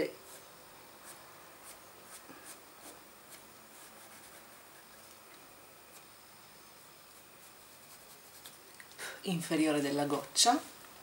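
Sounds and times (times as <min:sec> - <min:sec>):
pencil scratching on paper: 0:00.2 - 0:04.8, 0:07.1 - 0:08.6.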